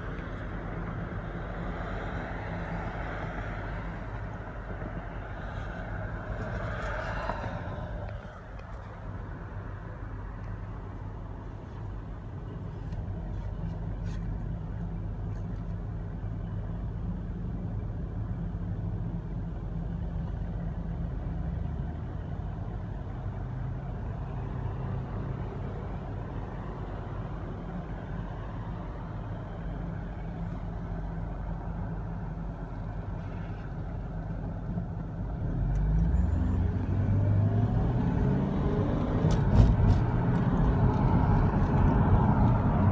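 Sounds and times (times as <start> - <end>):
street traffic: 0.0 - 42.9.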